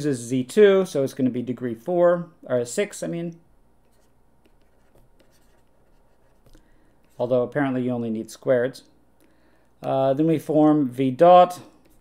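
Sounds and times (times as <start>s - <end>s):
stylus scratching on tablet screen: 3.8s - 7.2s, 11.8s - 12.0s
stylus tapping: 3.8s - 7.2s.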